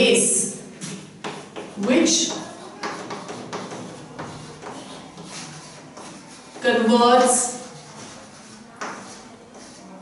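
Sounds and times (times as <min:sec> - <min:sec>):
chalk scratching on chalkboard: 0:00.8 - 0:10.0.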